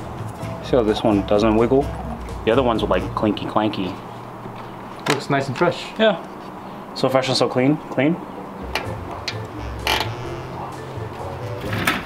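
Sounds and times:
low background music: 0:00.0 - 0:04.6, 0:08.2 - 0:12.0.

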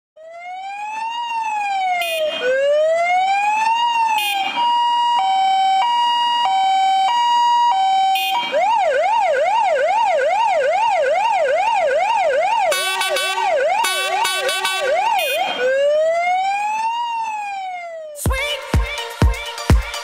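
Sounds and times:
fire engine siren: 0:00.2 - 0:18.3
short siren blip: 0:08.0 - 0:08.8, 0:12.7 - 0:15.9.

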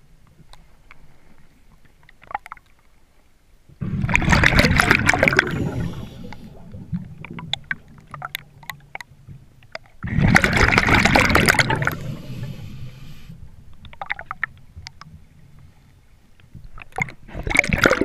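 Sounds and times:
rush of exhaled bubbles: 0:03.8 - 0:08.0, 0:10.0 - 0:13.1, 0:17.0 - 0:18.0
diver breathing through regulator: 0:05.4 - 0:06.8, 0:11.8 - 0:13.4.

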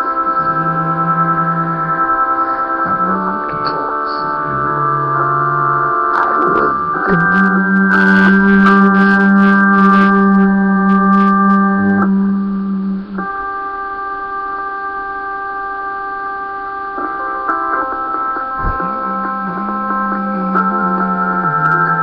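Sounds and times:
organ-like keyboard chords: 0:00.0 - 0:22.0
held low note: 0:02.8 - 0:14.6, 0:18.3 - 0:22.0.

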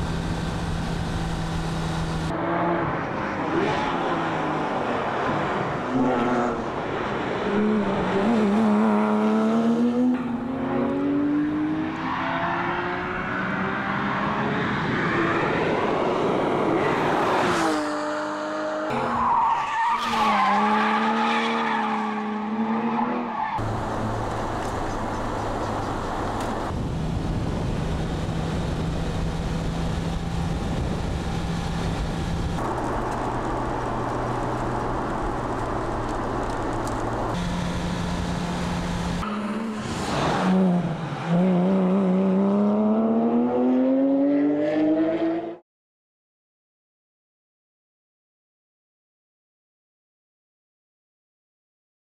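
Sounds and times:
car engine accelerating: 0:00.0 - 0:02.8, 0:22.2 - 0:45.6.

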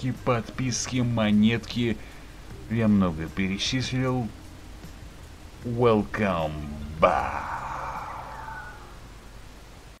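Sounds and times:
faint tone sliding downward: 0:06.4 - 0:09.1.

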